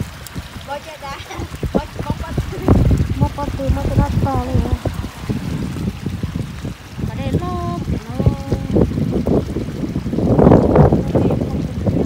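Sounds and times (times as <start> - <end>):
gusty wind on microphone: 0.0 - 12.0
lapping lake water: 0.0 - 12.0.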